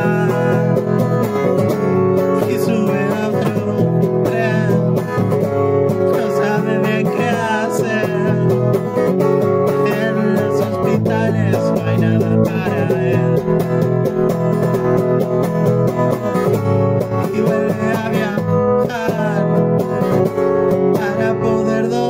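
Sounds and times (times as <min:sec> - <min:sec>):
guitar-led music: 0:00.0 - 0:22.0.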